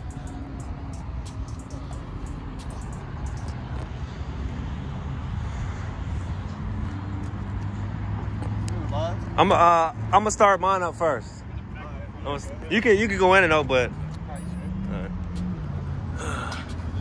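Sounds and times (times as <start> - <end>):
car engine idling: 0.0 - 3.6.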